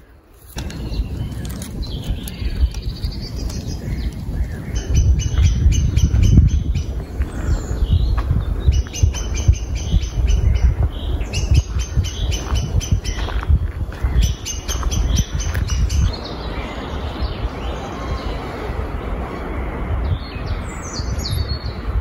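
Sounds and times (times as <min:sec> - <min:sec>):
low rumble on microphone: 0:00.0 - 0:22.0
songbird calling: 0:00.6 - 0:18.6.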